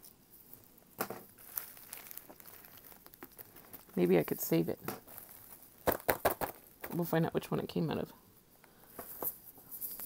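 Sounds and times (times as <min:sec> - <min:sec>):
plastic bags rustling: 0:00.3 - 0:07.2.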